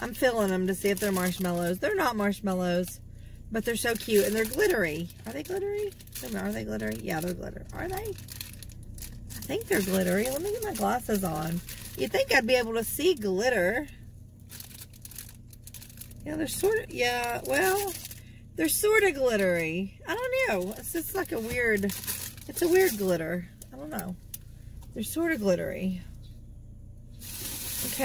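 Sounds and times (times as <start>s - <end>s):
low steady hum: 0.0s - 28.0s
plastic bag crinkling: 3.6s - 12.4s, 14.4s - 18.2s, 19.0s - 23.2s, 27.2s - 28.0s
steady hiss: 27.1s - 28.0s.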